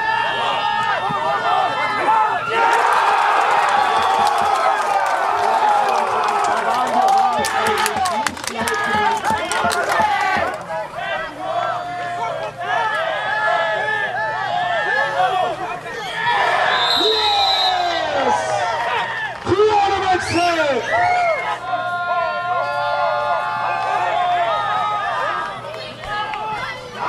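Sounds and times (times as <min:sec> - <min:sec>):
crowd cheering and shouting: 0:00.0 - 0:27.0
crowd clapping: 0:02.6 - 0:10.8.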